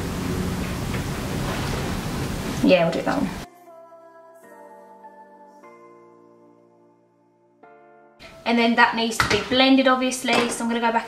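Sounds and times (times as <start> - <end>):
steady hiss: 0.0 - 3.4.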